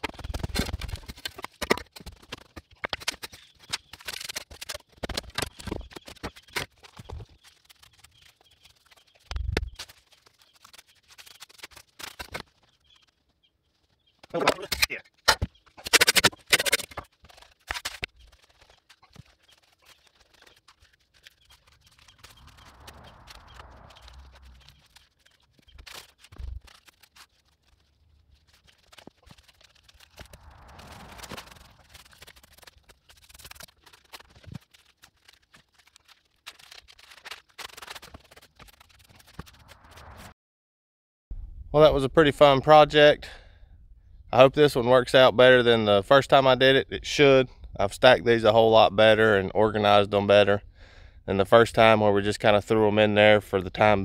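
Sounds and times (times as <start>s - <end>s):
stones clacking and knocking: 0.0s - 13.1s, 14.1s - 27.3s
stones scraping: 14.0s - 40.2s.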